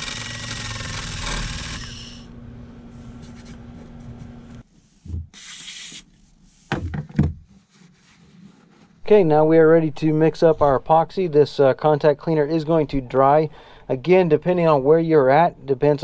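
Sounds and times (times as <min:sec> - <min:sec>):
rotary tool grinding fiberglass: 0:00.0 - 0:02.3.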